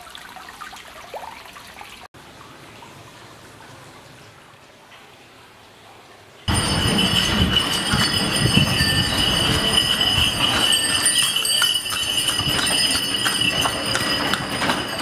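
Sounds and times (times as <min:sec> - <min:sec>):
high ringing tone: 0:06.5 - 0:15.0.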